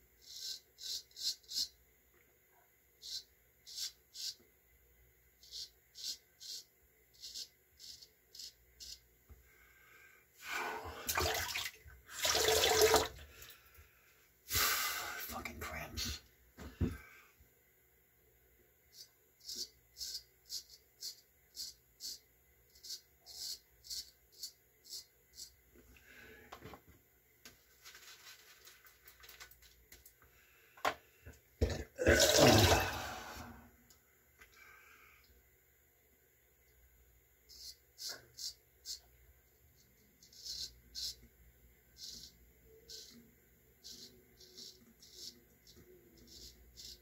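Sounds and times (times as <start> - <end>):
running water: 11.0 - 13.2.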